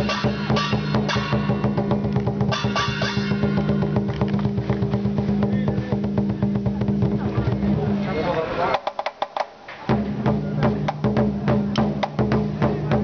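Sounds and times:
cymbal crashes: 0:00.0 - 0:04.1
fast drum beat: 0:00.0 - 0:13.0.

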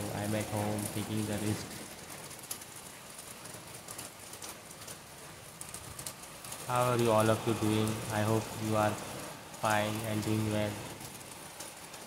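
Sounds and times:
raindrops tapping on surfaces: 0:00.0 - 0:12.0
steady rain hiss: 0:00.0 - 0:12.0.

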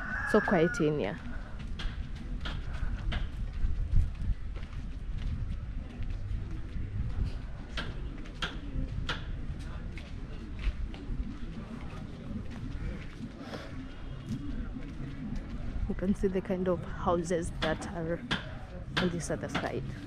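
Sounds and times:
footsteps on sandy dirt path: 0:01.1 - 0:16.6
low microphone rumble: 0:01.2 - 0:20.0.

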